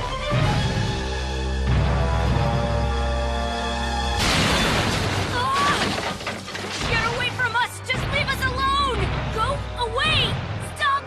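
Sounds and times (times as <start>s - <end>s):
wooden building crashing: 4.2s - 7.6s
cartoon background music: 6.8s - 11.0s.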